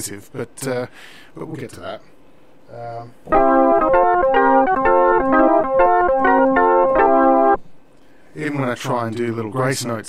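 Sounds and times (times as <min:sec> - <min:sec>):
synthesizer organ chords: 0:03.3 - 0:07.6.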